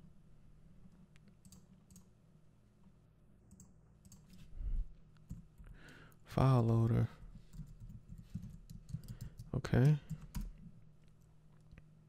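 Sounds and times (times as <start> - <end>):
computer keys and mouse clicks: 0.9 - 2.1, 3.5 - 4.5, 5.2 - 6.9, 7.5 - 11.8.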